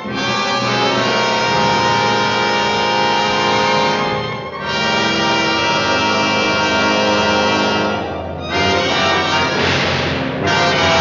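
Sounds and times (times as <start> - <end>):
sustained orchestral chord: 0.0 - 11.0.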